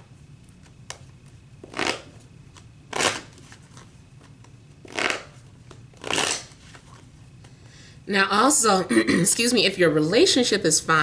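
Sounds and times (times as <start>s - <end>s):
cards being shuffled by hand: 0.5s - 7.6s.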